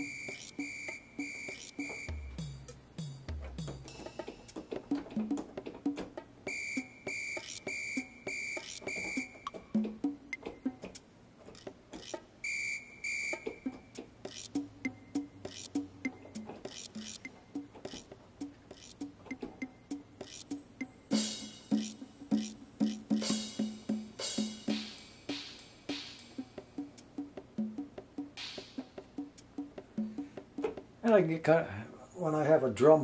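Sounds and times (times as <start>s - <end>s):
shrill whistle-like tone: 0.0s - 2.2s, 6.5s - 9.6s, 12.4s - 13.8s
keyboard drum pattern: 0.0s - 12.2s, 13.2s - 31.2s.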